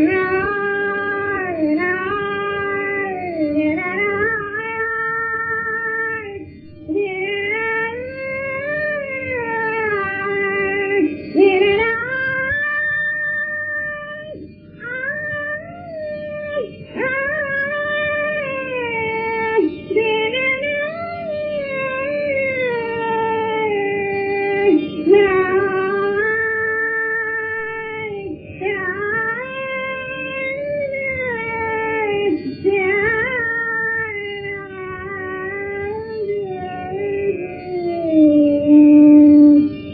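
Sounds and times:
woman singing a long held note: 0.0s - 39.9s.

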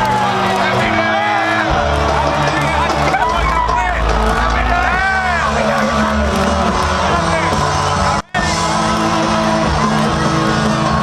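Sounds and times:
crowd voices: 0.0s - 11.0s
loud dance music: 0.0s - 11.0s.

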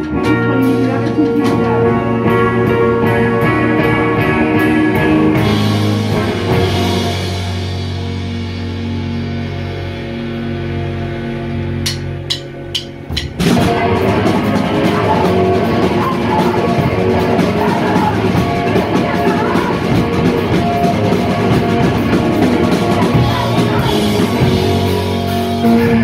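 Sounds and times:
electric guitar notes ringing: 0.0s - 26.0s
rock band playing loud: 0.0s - 26.0s
drumstick clicks: 11.8s - 13.4s.

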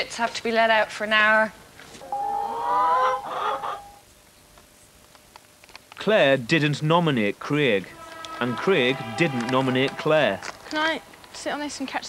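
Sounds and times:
hens squawking and clucking: 2.0s - 4.0s, 7.9s - 11.3s
steady high tone: 2.0s - 4.0s.

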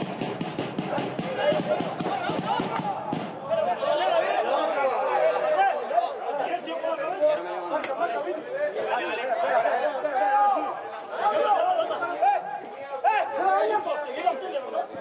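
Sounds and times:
men shouting and talking: 0.0s - 15.0s.

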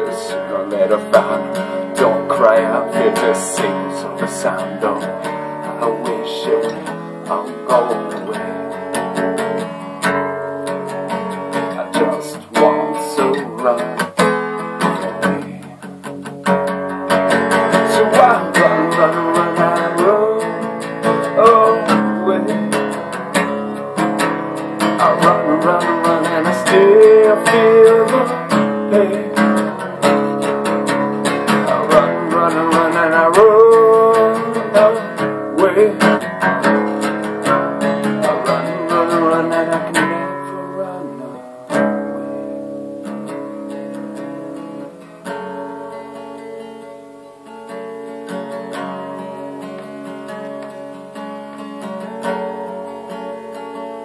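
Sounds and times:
man singing: 0.0s - 9.8s, 10.6s - 15.9s, 17.1s - 42.4s
acoustic guitar strumming: 0.0s - 54.0s.

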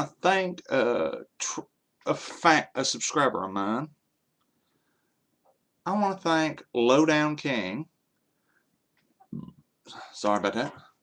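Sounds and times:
person throat noise: 9.2s - 9.6s.

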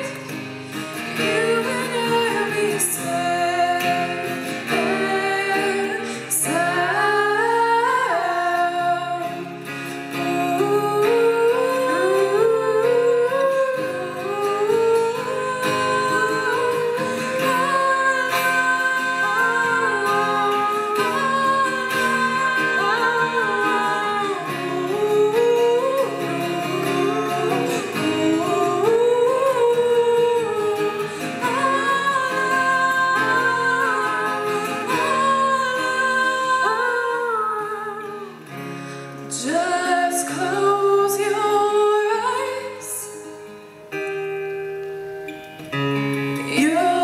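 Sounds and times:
two women singing in harmony: 0.0s - 38.5s, 39.3s - 43.4s, 46.4s - 47.0s
acoustic guitar: 0.0s - 47.0s.

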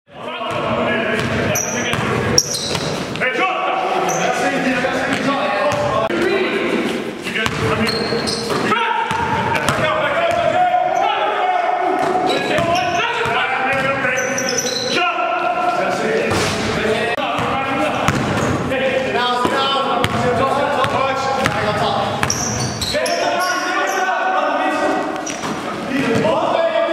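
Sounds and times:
players calling out: 0.2s - 26.9s
basketball bouncing on court: 0.4s - 3.2s, 7.4s - 10.6s, 12.0s - 14.0s, 17.3s - 18.6s, 19.4s - 22.9s
sneaker squeaks: 1.2s - 3.2s, 4.0s - 4.4s, 7.4s - 9.3s, 12.0s - 15.0s, 21.4s - 24.1s, 25.1s - 25.8s.

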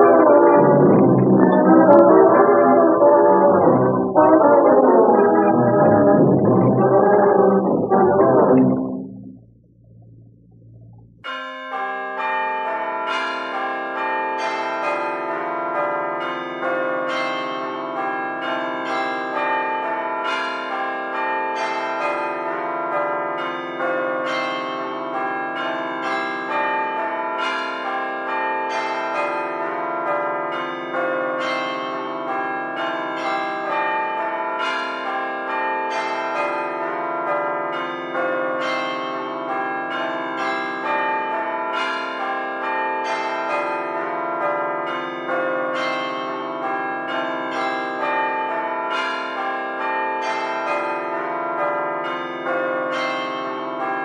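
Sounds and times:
peal of bells ringing: 0.0s - 8.7s.

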